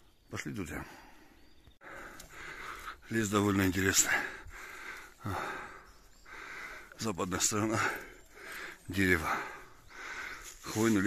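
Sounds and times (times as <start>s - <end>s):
person breathing hard: 1.0s - 3.1s, 4.0s - 7.0s, 7.8s - 10.7s.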